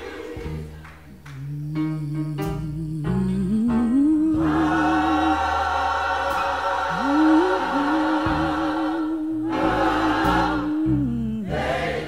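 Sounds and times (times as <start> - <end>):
gospel choir singing: 0.0 - 1.4, 3.9 - 12.0
sustained chords: 0.3 - 11.9.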